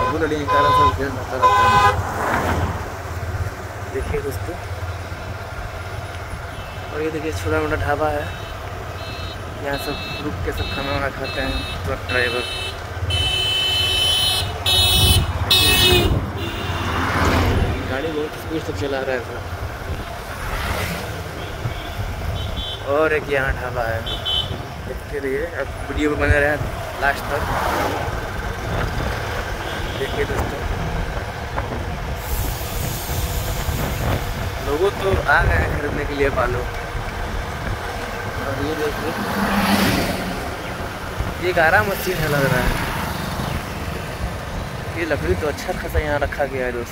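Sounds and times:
vehicle horn blasts: 0.0s - 2.0s, 6.5s - 7.0s, 8.2s - 17.2s, 21.4s - 22.9s, 24.0s - 24.7s, 29.6s - 30.4s
traffic engine rumble: 0.0s - 46.9s
vehicle passing close by: 1.7s - 3.8s, 14.8s - 18.0s, 19.5s - 21.9s, 26.6s - 29.6s, 37.2s - 44.9s.

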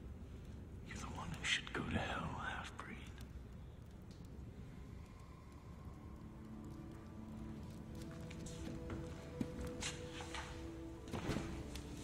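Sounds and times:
breathy whispered voice: 0.8s - 7.3s.

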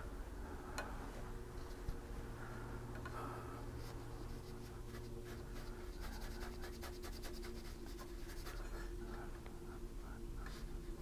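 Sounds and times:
brush stroking on paper: 3.8s - 8.9s.

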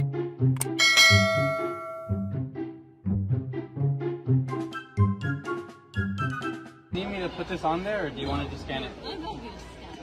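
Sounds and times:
background music with steady beat: 0.0s - 7.0s.

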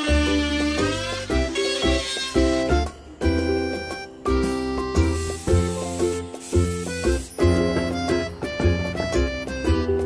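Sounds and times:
upbeat background music: 0.0s - 10.0s
spray paint can hissing: 4.9s - 8.2s.

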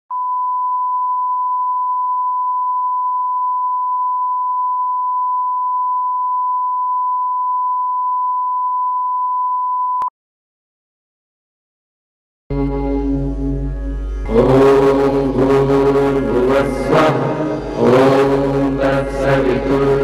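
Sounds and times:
steady sine test tone: 0.1s - 10.1s.

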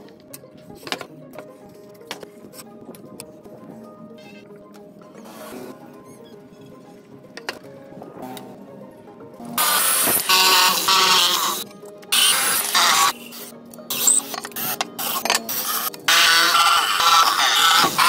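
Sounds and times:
light background music: 0.0s - 18.0s
electric drill boring through plywood: 9.6s - 18.0s.

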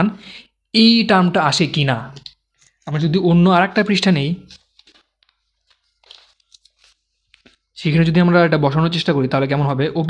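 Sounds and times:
paper rustling and crinkling: 3.7s - 7.8s.

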